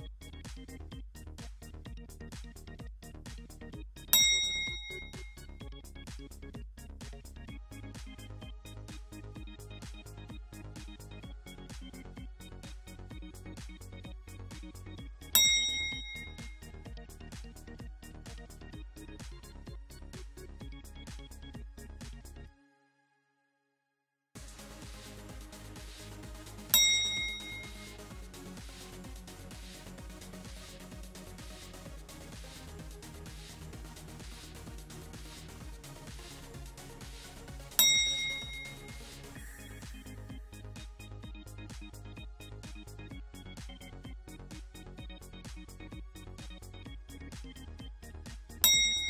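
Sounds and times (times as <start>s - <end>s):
electronic music with steady beat: 0.0s - 22.4s, 24.4s - 49.0s
bright bell-like ding: 4.2s - 5.3s, 15.4s - 16.5s, 26.7s - 28.0s, 37.8s - 39.0s, 48.6s - 49.0s.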